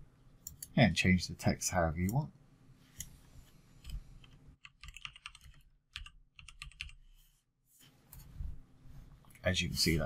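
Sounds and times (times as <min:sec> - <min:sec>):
keyboard typing: 0:03.8 - 0:07.0.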